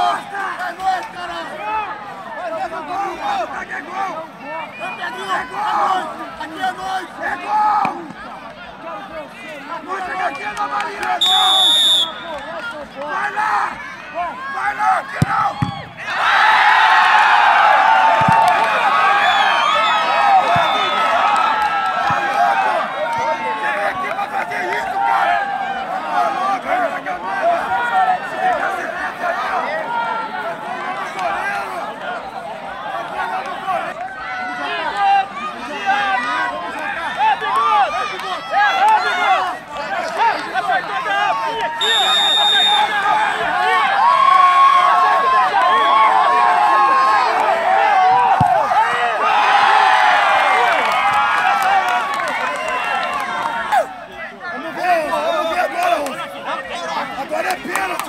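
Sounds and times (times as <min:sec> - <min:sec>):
crowd shouting and talking: 0:00.0 - 0:58.0.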